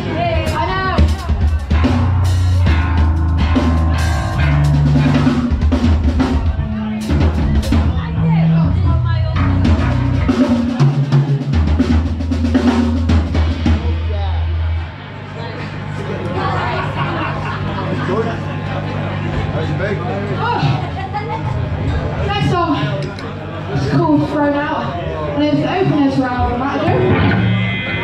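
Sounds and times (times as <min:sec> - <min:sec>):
drum kit: 0:00.0 - 0:15.2, 0:25.8 - 0:28.0
electric guitar: 0:00.0 - 0:22.4, 0:24.2 - 0:28.0
bass guitar: 0:00.0 - 0:28.0.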